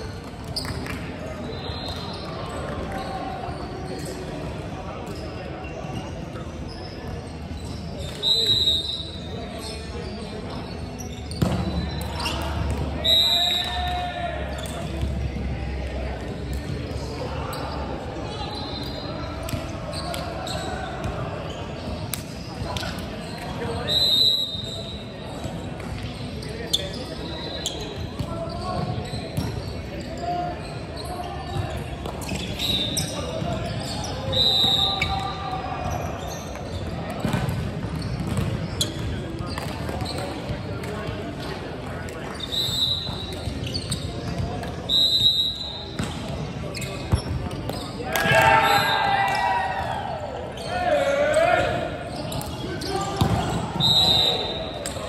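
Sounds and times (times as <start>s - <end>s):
players' voices: 0.0s - 55.0s
shoes squeaking on court: 0.1s - 13.1s, 14.5s - 44.9s, 45.5s - 49.1s, 50.4s - 55.0s
volleyball hits and bounces: 52.4s - 53.7s.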